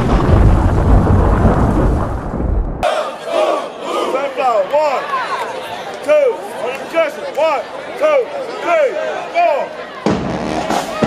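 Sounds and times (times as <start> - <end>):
rain: 0.0 - 2.8
thunder rumble: 0.0 - 2.8
crowd voices and shouts: 2.8 - 11.0.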